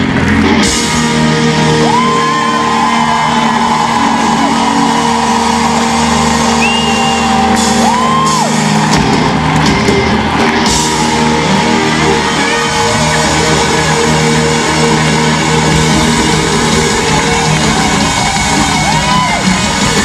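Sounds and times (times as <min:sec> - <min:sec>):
crowd shouting and whooping: 0:00.0 - 0:20.0
live rock band playing: 0:00.0 - 0:20.0.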